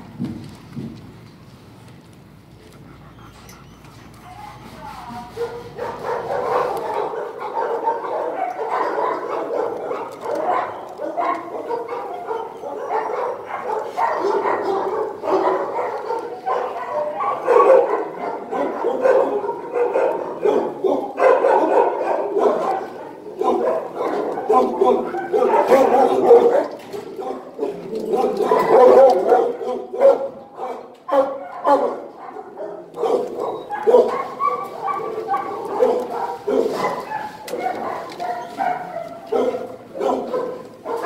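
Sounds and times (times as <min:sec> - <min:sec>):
dogs barking and whining: 0:02.6 - 0:41.0.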